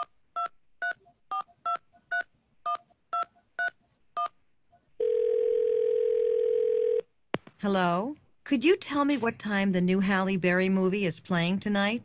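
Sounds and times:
telephone ringing tone: 5.0 - 7.1.

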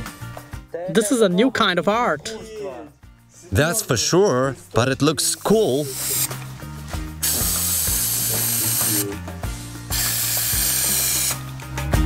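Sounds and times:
spray paint can hissing: 5.8 - 6.4, 7.2 - 9.1, 9.9 - 11.5.

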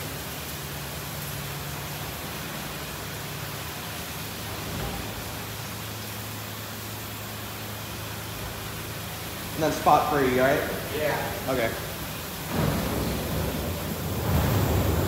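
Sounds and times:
water spray hissing: 0.0 - 15.0
low motor hum: 10.6 - 15.0.

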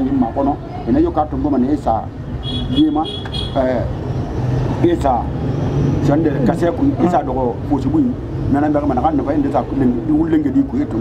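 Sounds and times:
man speaking: 0.0 - 4.0, 6.0 - 11.0.

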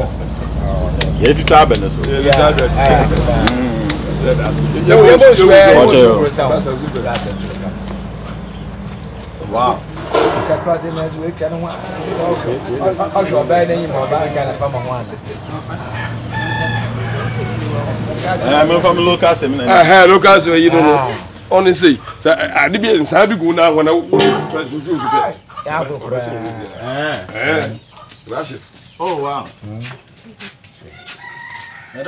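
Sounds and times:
short knock: 10.0 - 11.6
rooster crowing: 15.8 - 18.2, 30.9 - 32.0.

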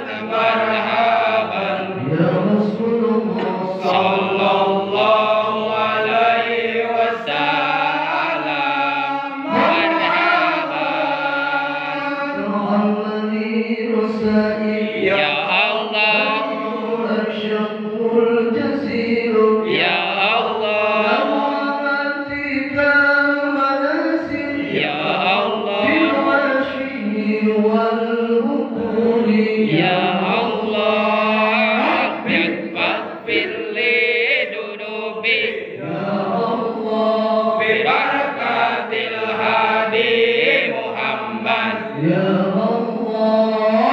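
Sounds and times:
men chanting into a microphone: 0.0 - 43.9.

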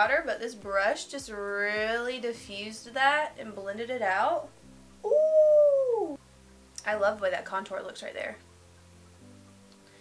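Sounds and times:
quiet background music: 0.0 - 10.0
woman saying ooh: 5.0 - 6.2.

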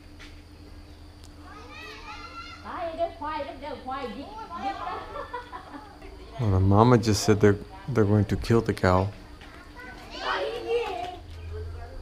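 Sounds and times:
children calling out and chattering: 1.3 - 6.6, 8.9 - 12.0.

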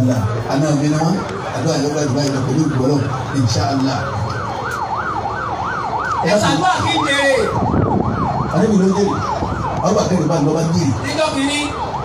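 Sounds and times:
siren warbling: 0.0 - 12.0.

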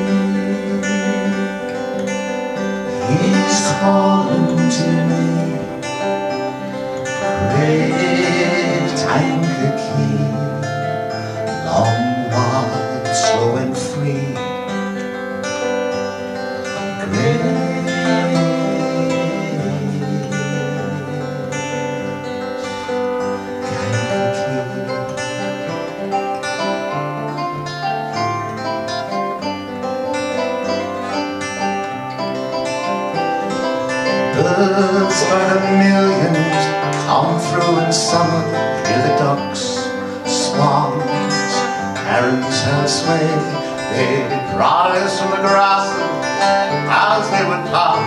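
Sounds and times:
acoustic guitars playing folk music: 0.0 - 48.0.

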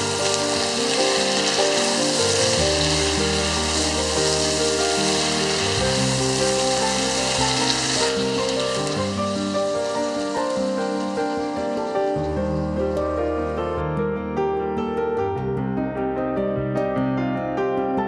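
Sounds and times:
chicken sizzling in a pot: 0.0 - 13.0
background music: 0.0 - 18.0.

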